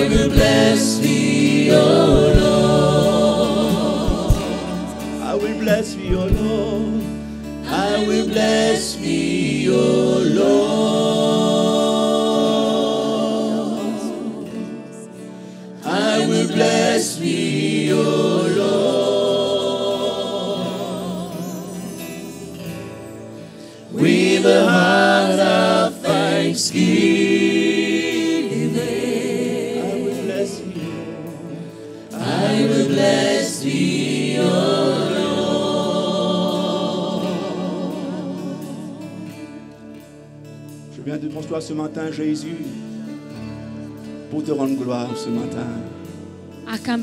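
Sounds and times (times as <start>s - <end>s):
live band accompaniment: 0.0s - 8.8s, 35.4s - 47.0s
worship singers holding long notes: 0.0s - 46.6s.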